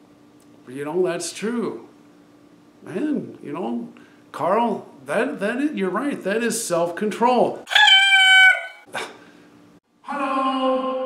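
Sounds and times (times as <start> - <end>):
high-pitched voice-like call: 7.7 - 9.1.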